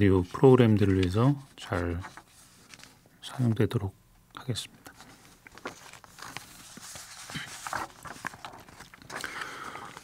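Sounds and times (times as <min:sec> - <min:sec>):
paper rustling: 0:00.3 - 0:03.1, 0:04.9 - 0:10.0.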